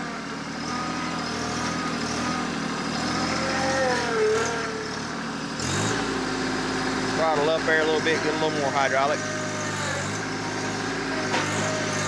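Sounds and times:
hydraulic loader working: 0.0s - 12.0s
tractor diesel engine running: 0.0s - 12.0s.

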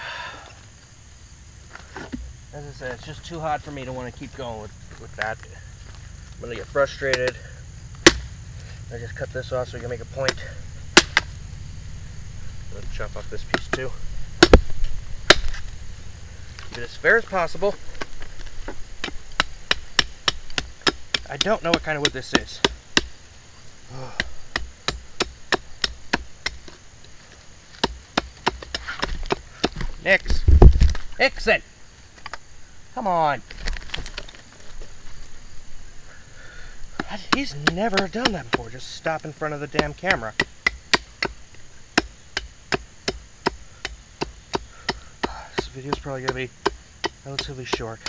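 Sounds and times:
knife chopping into wood: 7.1s - 7.4s, 8.0s - 8.3s, 10.2s - 11.3s, 13.4s - 15.7s, 17.9s - 23.2s, 24.0s - 26.8s, 27.7s - 31.0s, 36.9s - 38.8s, 39.7s - 41.4s, 42.0s - 48.0s
knife chopping wooden stick: 36.9s - 38.8s, 39.7s - 41.4s, 42.0s - 48.0s.

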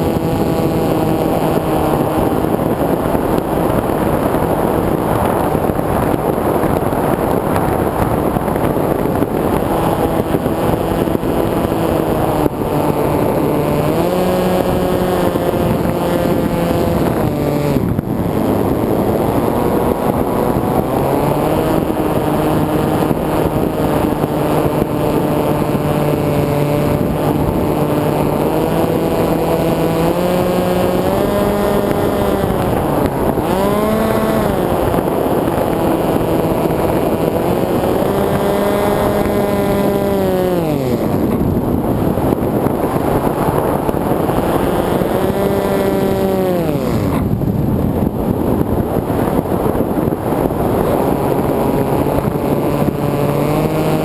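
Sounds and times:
electric motor propeller whine: 0.0s - 54.0s
wind rushing over microphone: 0.0s - 54.0s.

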